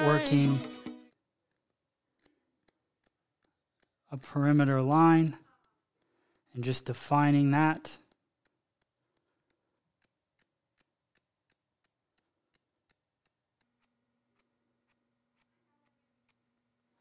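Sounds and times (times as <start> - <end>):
scissors snipping hair: 1.1 - 16.5.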